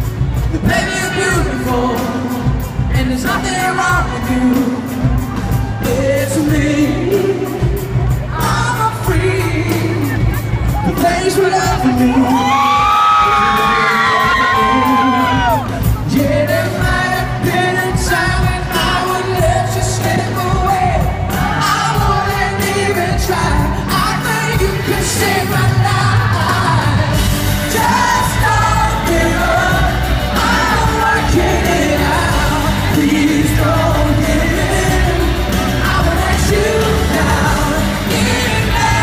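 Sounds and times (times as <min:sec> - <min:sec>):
live pop band playing: 0:00.0 - 0:39.0
man singing into microphone: 0:00.5 - 0:39.0.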